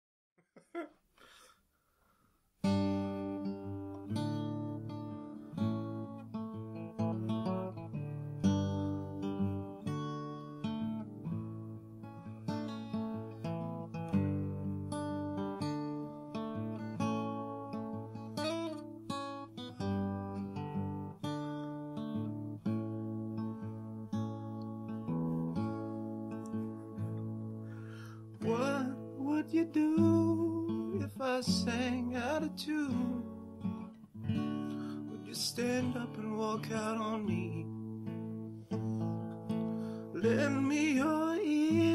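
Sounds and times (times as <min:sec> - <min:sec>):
acoustic guitar strumming: 0:02.6 - 0:41.9.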